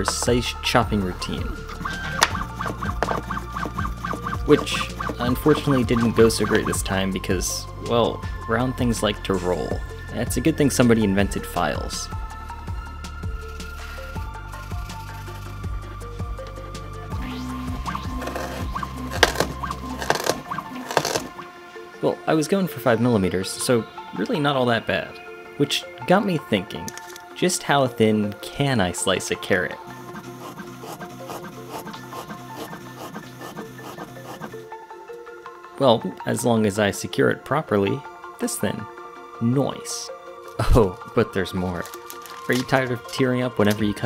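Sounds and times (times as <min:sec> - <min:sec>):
background music: 0:00.0 - 0:44.0
robot motors whining: 0:01.7 - 0:06.7, 0:14.6 - 0:15.8, 0:30.0 - 0:34.6.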